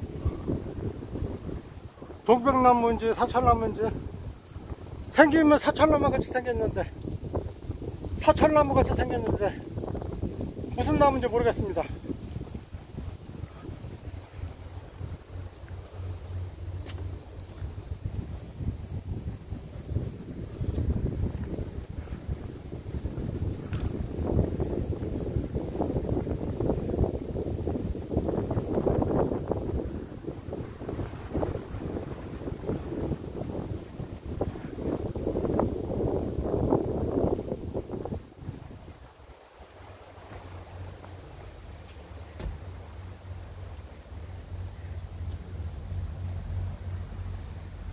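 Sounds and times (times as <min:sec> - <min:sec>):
wind buffeting microphone: 0:00.0 - 0:47.9.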